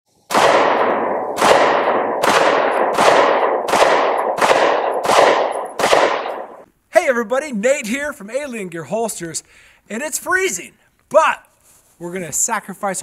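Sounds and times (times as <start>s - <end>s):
pistol shots with echo: 0.3s - 6.6s.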